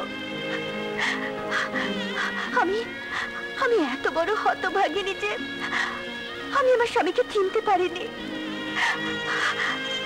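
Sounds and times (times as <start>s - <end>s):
film score sustained notes: 0.0s - 10.0s
woman crying and wailing: 0.4s - 7.2s, 8.8s - 10.0s.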